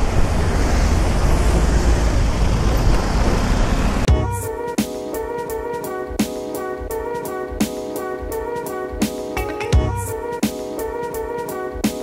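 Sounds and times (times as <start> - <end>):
road and traffic noise: 0.0 - 4.1.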